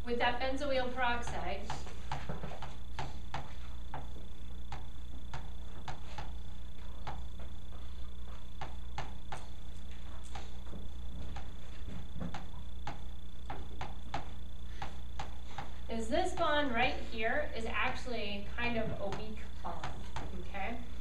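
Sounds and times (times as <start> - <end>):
faint high whine: 0.0 - 21.0
low hum: 0.0 - 21.0
chalk tapping and scraping: 4.7 - 6.4, 7.8 - 16.5.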